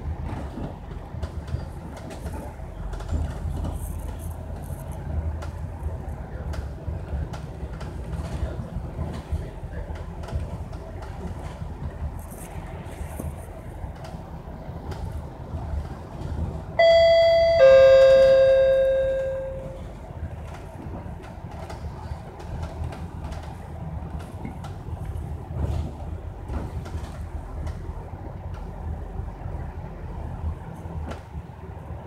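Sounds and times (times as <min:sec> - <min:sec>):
bus rumbling and rattling: 0:00.0 - 0:32.0
two-note bus bell chime: 0:16.8 - 0:20.0.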